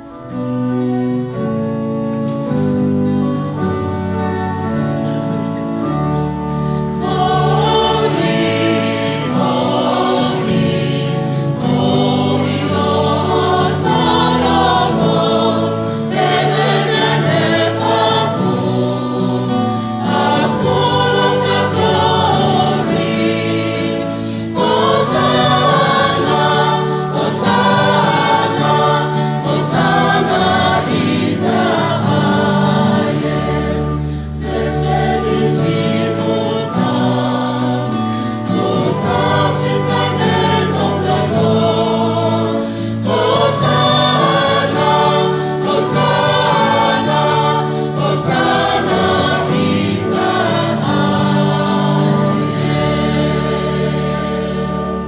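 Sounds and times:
acoustic guitar: 0:00.0 - 0:55.0
choir singing a hymn: 0:00.0 - 0:55.0.

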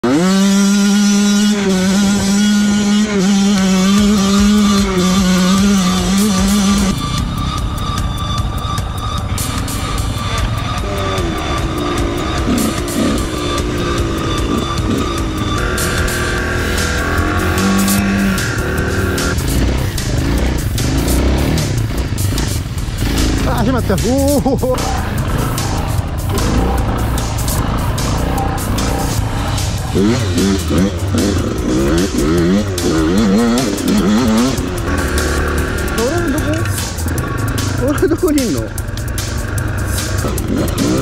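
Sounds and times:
motorcycle engine revving: 0:00.0 - 0:41.0
music: 0:00.0 - 0:41.0.

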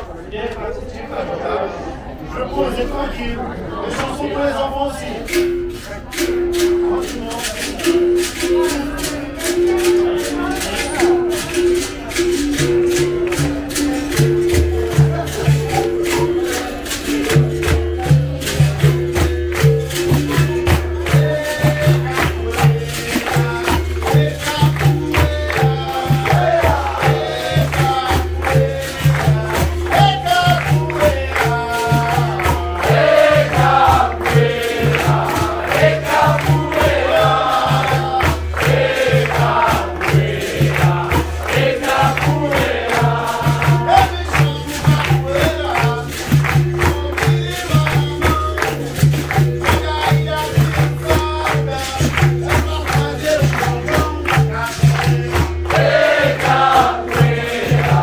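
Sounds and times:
hand drum rhythm: 0:04.0 - 0:58.0
berimbaus playing: 0:04.7 - 0:58.0
people clapping along: 0:05.1 - 0:58.0
group singing: 0:07.8 - 0:58.0.

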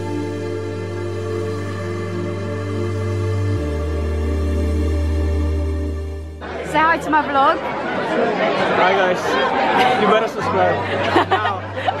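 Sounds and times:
music: 0:00.0 - 0:07.5, 0:09.9 - 0:12.0
background music: 0:00.0 - 0:07.6, 0:09.8 - 0:12.0
many people talking: 0:06.4 - 0:12.0.

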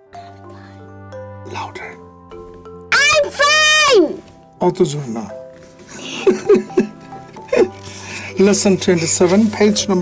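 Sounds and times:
child's voice: 0:02.9 - 0:04.2.

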